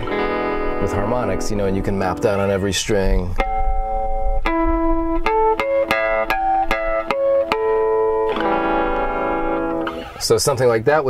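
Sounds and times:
electric guitar harmonics: 0:00.0 - 0:10.8.

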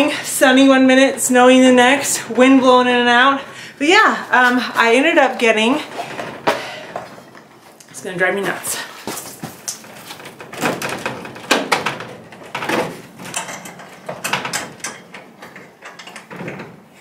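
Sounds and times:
plastic vent panel rattling and scraping: 0:05.6 - 0:07.6, 0:09.2 - 0:16.9.

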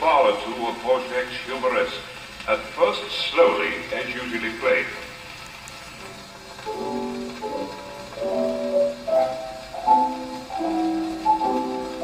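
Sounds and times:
player piano melody on gramophone: 0:00.0 - 0:05.1, 0:05.7 - 0:12.0.

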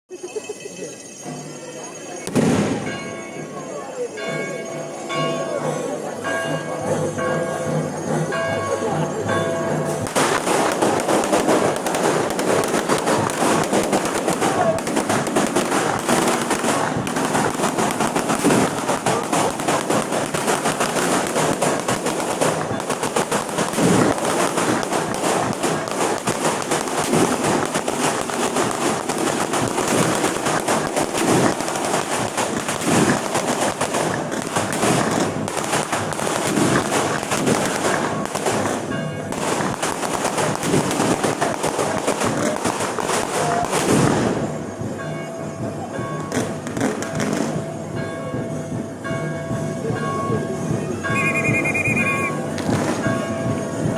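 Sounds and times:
fireworks crackling: 0:00.1 - 0:06.1, 0:09.2 - 0:53.9.

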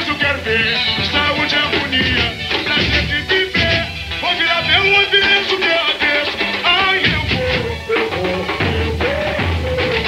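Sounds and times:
man singing: 0:00.0 - 0:10.0
samba percussion band: 0:00.0 - 0:10.0.

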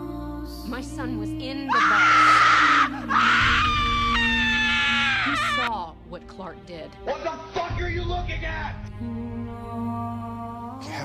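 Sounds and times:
child screaming: 0:01.7 - 0:05.7.

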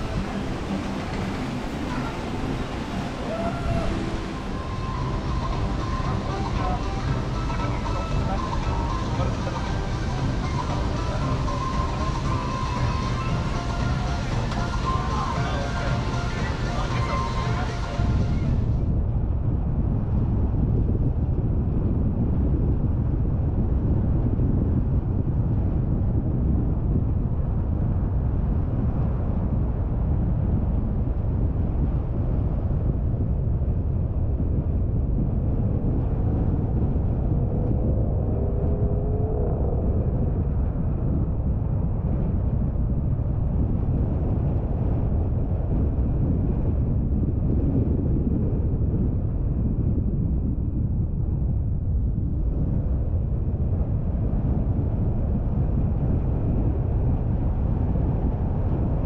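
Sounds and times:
faint wavering whine: 0:00.0 - 0:19.0
car driving rumble: 0:35.6 - 0:42.0.

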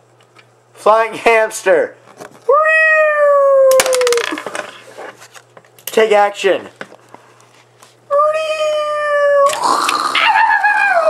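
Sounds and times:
long high-pitched cry: 0:08.2 - 0:11.0.

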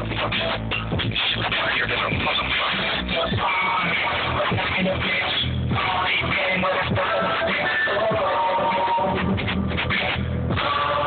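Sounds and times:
music on car stereo: 0:00.0 - 0:11.0.

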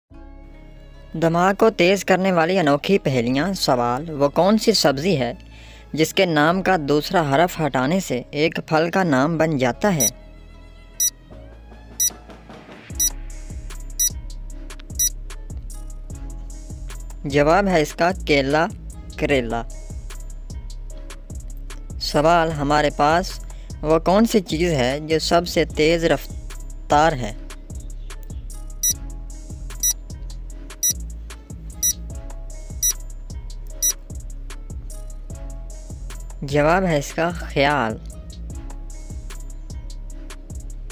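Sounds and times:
background music: 0:00.1 - 0:40.9.

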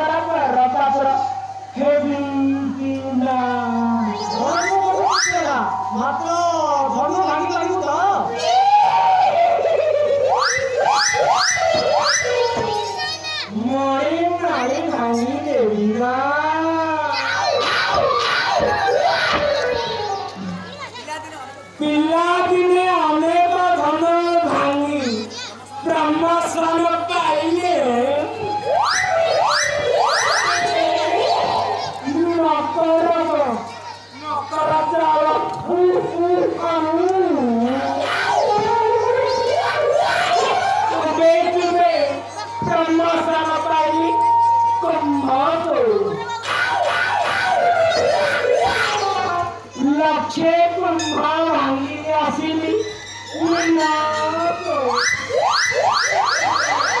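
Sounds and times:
held electronic tone: 0:00.9 - 0:02.4, 0:03.5 - 0:08.0, 0:09.8 - 0:13.2, 0:28.2 - 0:33.0, 0:52.8 - 0:57.0
electronic rising pitch sweeps: 0:03.4 - 0:13.0, 0:27.7 - 0:33.3, 0:37.8 - 0:45.3, 0:52.9 - 0:57.0.

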